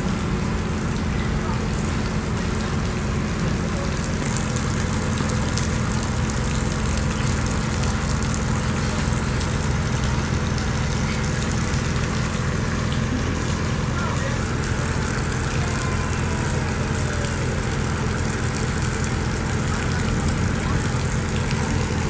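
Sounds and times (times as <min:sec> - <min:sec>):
machinery humming: 0:00.0 - 0:22.0.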